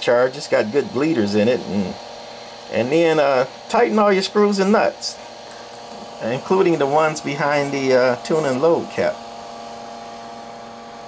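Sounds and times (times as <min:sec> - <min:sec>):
amplifier hum: 0:00.0 - 0:11.0
cooling fan running: 0:00.0 - 0:11.0.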